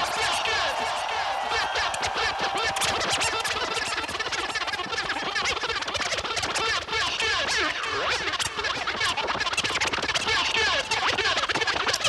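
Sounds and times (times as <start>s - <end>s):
turntable scratching: 0.0s - 12.0s.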